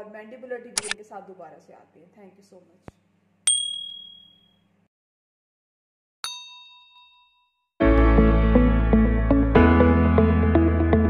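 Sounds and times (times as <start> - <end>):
notification bell ding: 3.5 - 4.5
music: 7.8 - 11.0.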